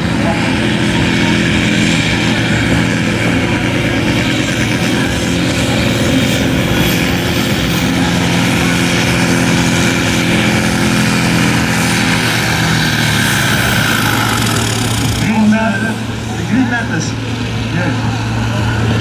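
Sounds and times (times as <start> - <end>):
tractor diesel engine under load: 0.0 - 19.0.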